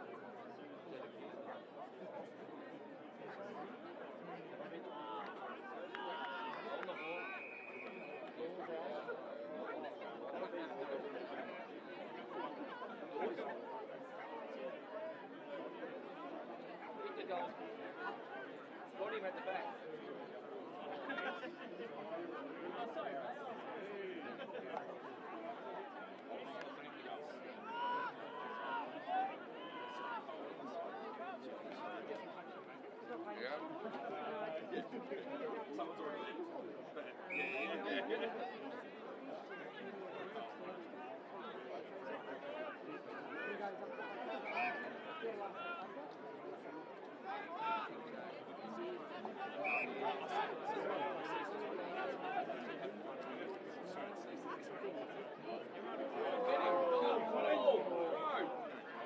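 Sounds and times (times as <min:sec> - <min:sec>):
babble of voices: 0:00.0 - 0:59.0.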